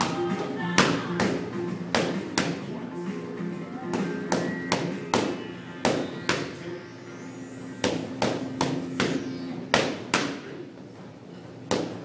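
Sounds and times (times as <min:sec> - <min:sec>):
boxing gloves punching mitts: 0:00.0 - 0:02.7, 0:03.8 - 0:06.5, 0:07.8 - 0:10.6, 0:11.6 - 0:12.0
background music: 0:00.0 - 0:10.6.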